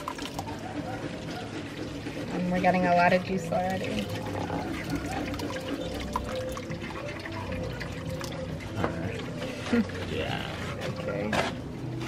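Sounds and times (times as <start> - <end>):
thick juice pouring into strainer: 0.0 - 2.4, 3.0 - 11.1.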